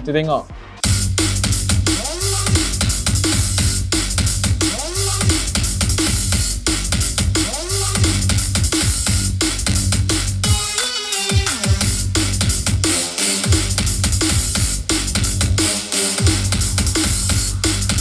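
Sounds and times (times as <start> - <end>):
drum and bass music: 0.1 - 18.0.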